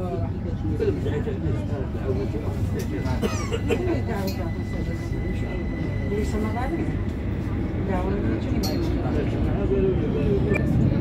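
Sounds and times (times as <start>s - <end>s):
metro train low rumble: 0.0s - 11.0s
passengers' voices: 0.0s - 11.0s
person coughing: 3.2s - 3.9s.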